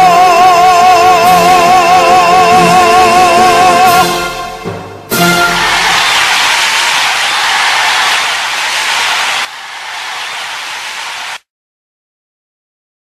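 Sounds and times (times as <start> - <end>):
loud static hiss: 5.6 - 11.4.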